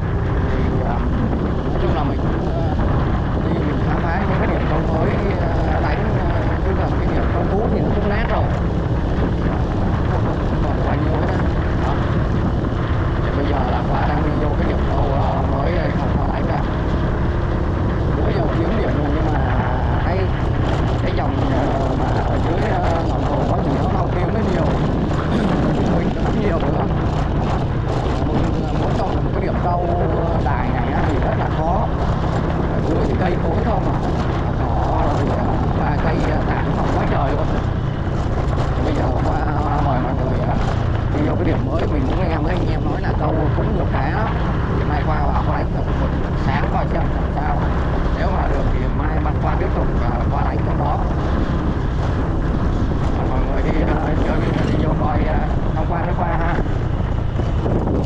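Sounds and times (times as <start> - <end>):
scooter engine running: 16.6 - 45.0.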